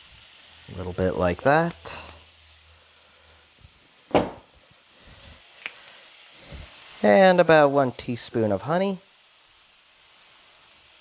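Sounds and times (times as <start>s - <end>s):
vegetables sizzling in a frying pan: 0.0s - 11.0s
sharp knock: 4.1s - 4.5s.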